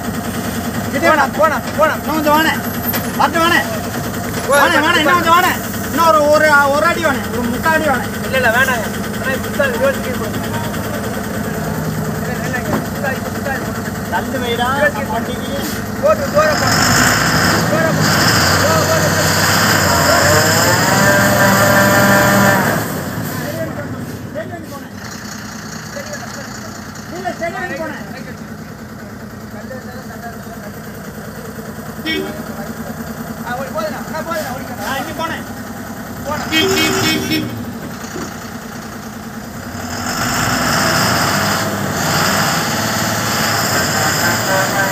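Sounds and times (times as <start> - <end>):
truck diesel engine revving: 0.0 - 44.9.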